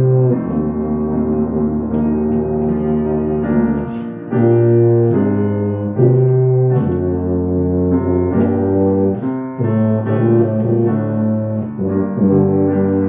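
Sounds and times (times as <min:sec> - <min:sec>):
tuba playing slow melody: 0:00.0 - 0:13.0.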